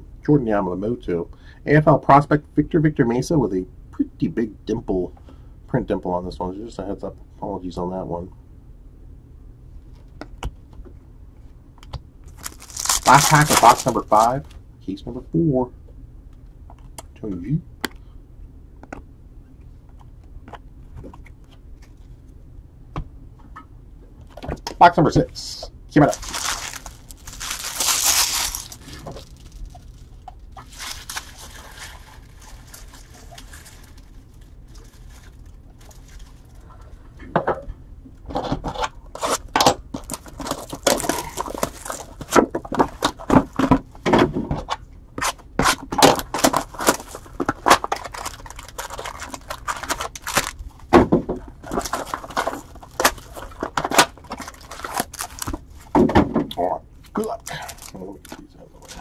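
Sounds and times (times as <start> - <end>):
crinkling and clicking of cards: 11.8 - 14.6, 26.0 - 36.6, 38.7 - 43.8, 44.6 - 56.0, 57.1 - 59.0
foil packs tearing: 12.4 - 14.4, 26.0 - 30.0, 30.6 - 36.3, 39.2 - 43.4, 45.6 - 50.6, 51.6 - 55.6, 57.5 - 58.1.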